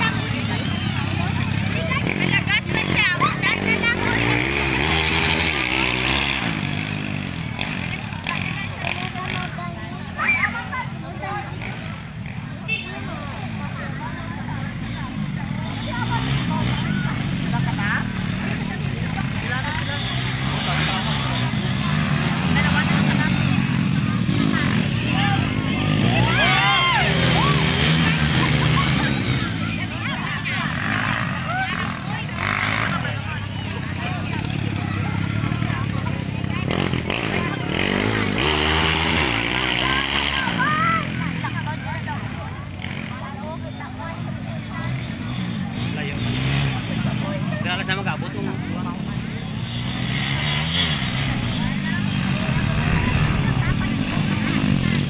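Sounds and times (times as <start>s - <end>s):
motorcycle engines running: 0.0s - 55.0s
spectators talking and calling out: 0.0s - 55.0s.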